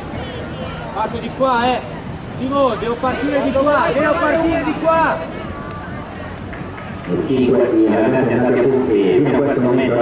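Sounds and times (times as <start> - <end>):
faint distant voices: 0.0 - 10.0
open-air background noise: 0.0 - 10.0
man announcing loudly: 1.0 - 5.3.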